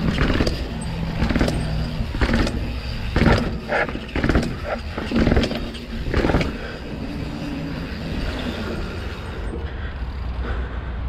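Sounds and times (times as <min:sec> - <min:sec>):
bike tyres rolling on concrete: 0:00.0 - 0:10.7.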